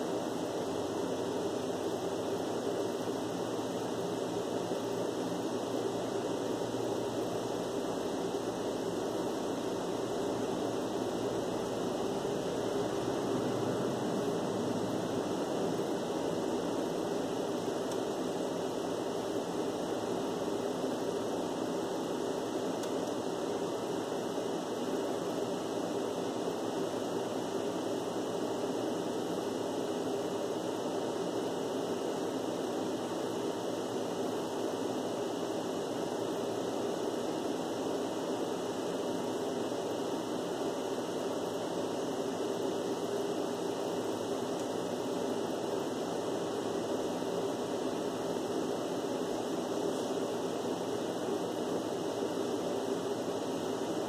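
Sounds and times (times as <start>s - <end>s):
air conditioner running: 0.0s - 54.0s.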